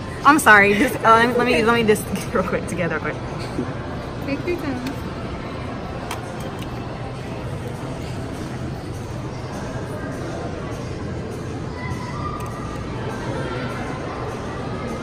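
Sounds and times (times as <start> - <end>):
faint distant voices: 0.0 - 15.0
music: 6.0 - 15.0.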